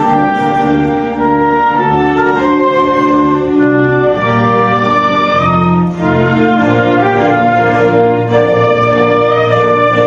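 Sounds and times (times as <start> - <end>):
orchestra playing anthem: 0.0 - 10.0.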